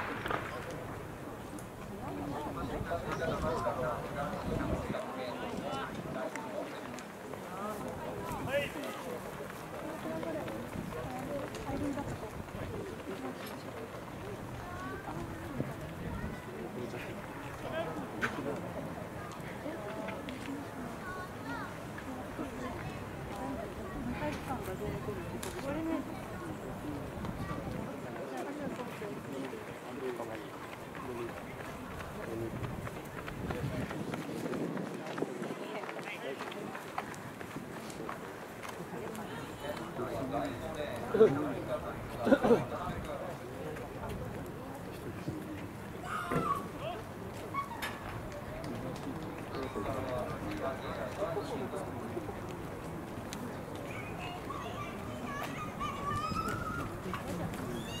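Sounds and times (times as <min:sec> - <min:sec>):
distant voices: 0:00.0 - 0:58.0
spectators calling and cheering: 0:53.8 - 0:58.0.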